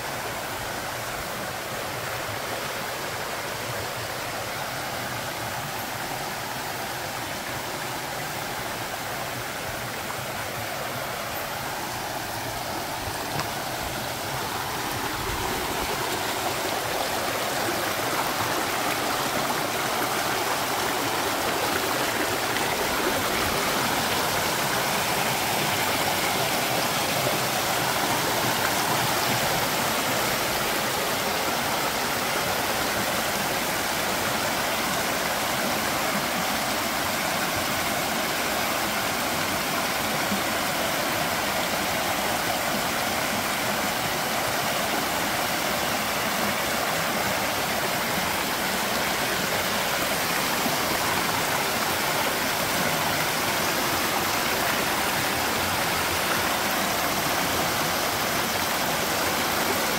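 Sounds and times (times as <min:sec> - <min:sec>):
stream rushing over rocks: 0:00.0 - 0:59.9.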